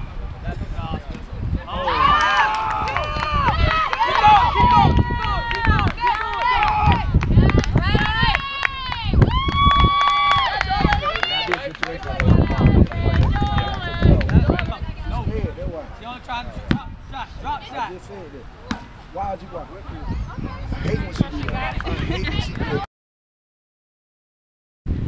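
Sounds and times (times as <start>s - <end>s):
women shouting and yelling: 1.7s - 15.2s.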